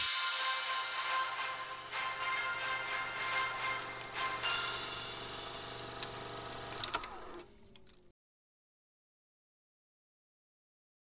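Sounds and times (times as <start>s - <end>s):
film projector whirring: 1.0s - 8.1s.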